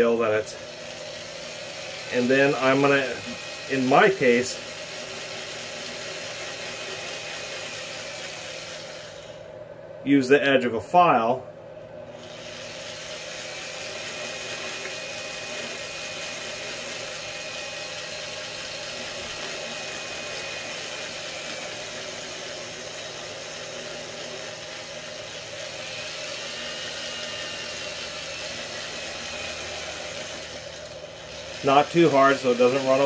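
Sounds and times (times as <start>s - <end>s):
electric drill running: 0.0s - 9.5s, 12.1s - 33.0s
file scraping spinning metal: 12.1s - 33.0s.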